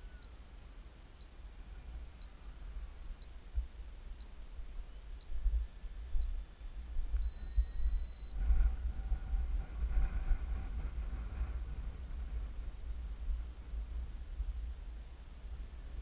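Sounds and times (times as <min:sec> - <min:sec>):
faint pitched hum: 0:00.0 - 0:16.0
wind buffeting microphone: 0:01.6 - 0:16.0
faint high electronic tone: 0:07.1 - 0:08.4.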